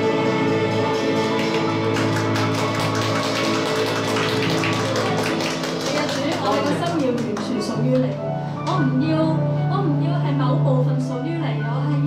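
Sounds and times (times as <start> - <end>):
electronic keyboard worship music: 0.0 - 9.0.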